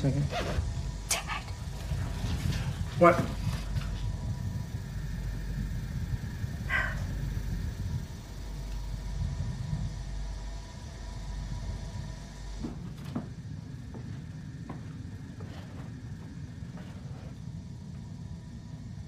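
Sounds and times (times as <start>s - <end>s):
low rumbling horror soundtrack: 0.0s - 19.0s.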